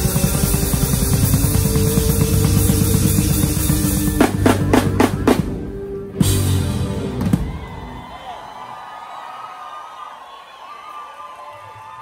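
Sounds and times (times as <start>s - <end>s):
drum hits: 0.0s - 7.7s
live rock band: 0.0s - 8.1s.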